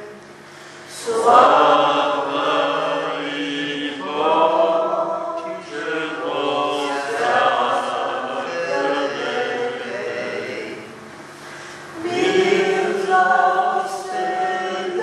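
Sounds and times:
group singing a hymn: 0.9 - 15.0.

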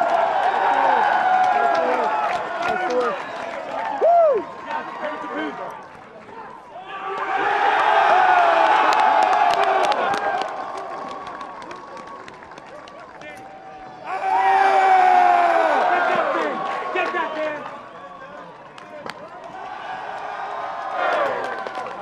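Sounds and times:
crowd cheering and shouting: 0.0 - 12.2, 13.2 - 22.0.

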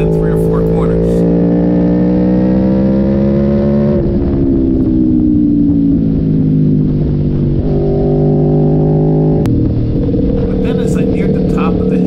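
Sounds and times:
motorcycle engine revving: 0.0 - 12.0.

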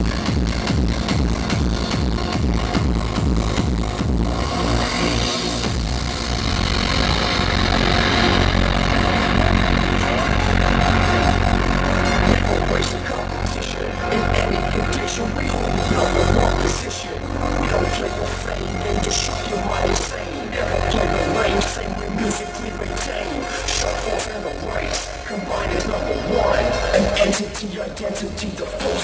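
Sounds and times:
electronic dance music: 0.0 - 29.0.

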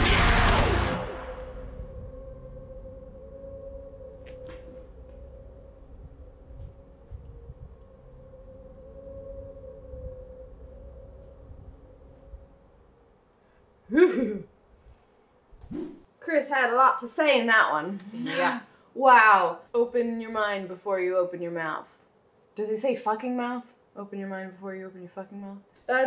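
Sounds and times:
heavy metal song: 0.0 - 1.7
low rumble: 0.0 - 13.3
faint held drone tone: 0.0 - 14.4.

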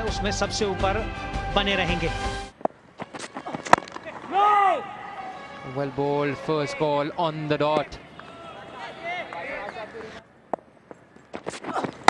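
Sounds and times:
cricket bat striking ball: 3.2 - 4.2
man shouting: 4.3 - 5.3.

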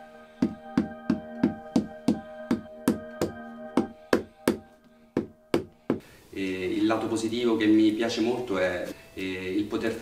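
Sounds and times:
background music tones: 0.0 - 10.0
hammer taps: 0.4 - 6.0.

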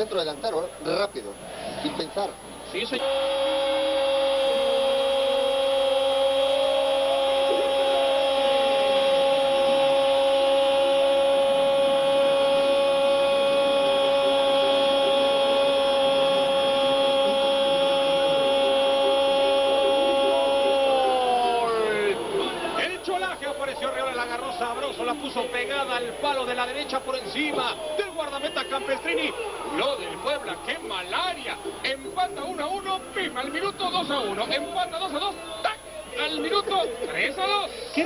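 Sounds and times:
commentator's long held goal cry: 3.0 - 23.0.

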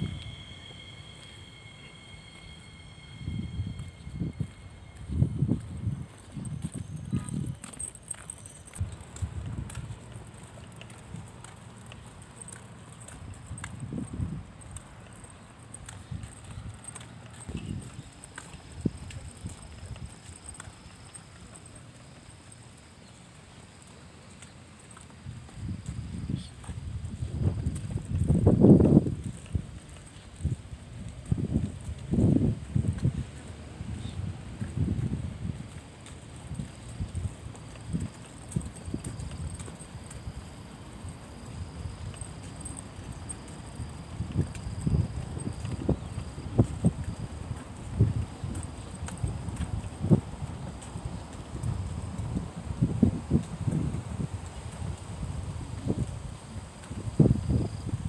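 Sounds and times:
low rumble: 0.0 - 6.2
footsteps on concrete: 0.0 - 58.0.

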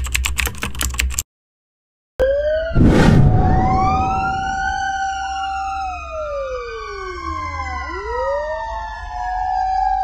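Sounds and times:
fire engine siren: 2.2 - 10.0.

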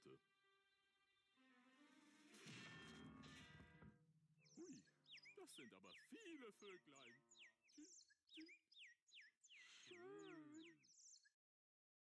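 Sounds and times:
light music: 0.0 - 4.0.

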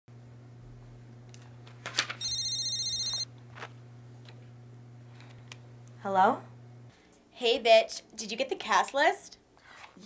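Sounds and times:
electronic phone ring: 2.2 - 3.3.

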